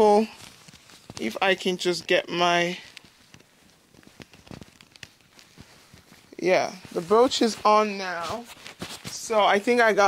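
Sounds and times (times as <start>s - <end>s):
leather rustling: 0.0s - 10.0s.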